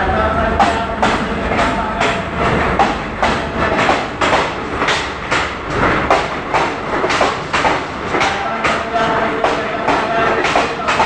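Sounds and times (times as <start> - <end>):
train rumble: 0.0 - 11.0
train wheels clattering over rail joints: 0.6 - 11.0.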